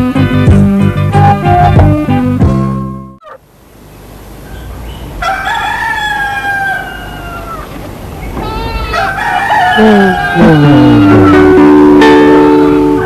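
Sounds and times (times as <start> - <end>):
rooster crowing: 4.5 - 7.8, 8.4 - 11.7.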